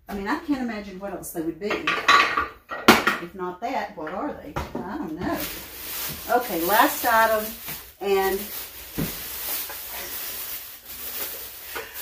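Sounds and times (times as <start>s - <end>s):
plastic bag rustling: 5.0s - 12.0s.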